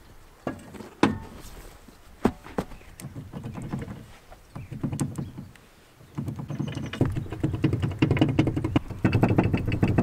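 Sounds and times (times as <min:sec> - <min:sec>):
small engine idling: 0:06.4 - 0:10.0.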